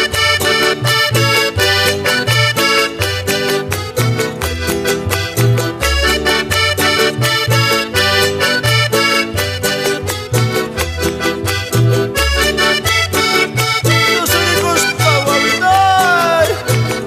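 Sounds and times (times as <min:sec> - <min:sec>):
piano accordion: 0:00.0 - 0:17.0
strummed charango and guitar: 0:00.0 - 0:17.0.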